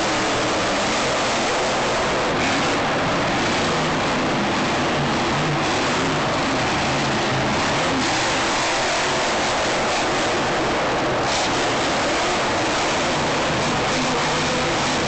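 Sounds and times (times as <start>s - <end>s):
monster truck engine running: 0.0s - 15.0s
stadium crowd noise: 0.0s - 15.0s.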